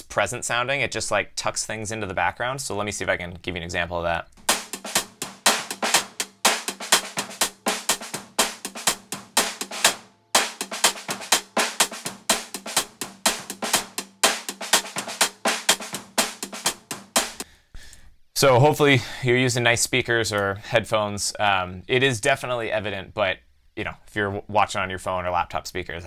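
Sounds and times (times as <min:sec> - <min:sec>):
lofi drums: 0:04.4 - 0:17.9.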